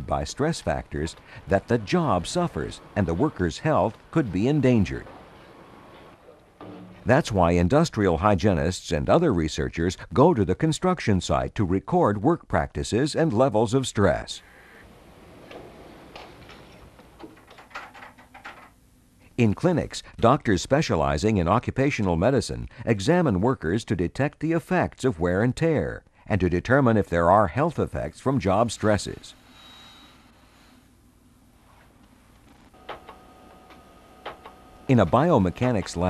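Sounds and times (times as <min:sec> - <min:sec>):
low background noise: 0:00.0 - 0:36.0.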